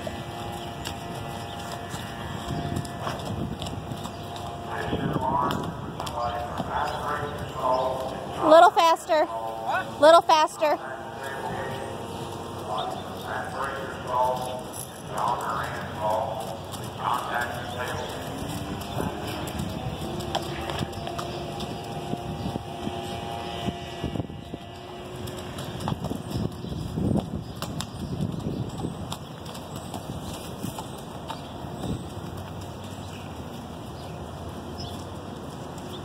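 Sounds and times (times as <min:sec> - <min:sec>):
horse hoofbeats on dirt: 0:00.0 - 0:36.0
person talking: 0:06.1 - 0:12.0.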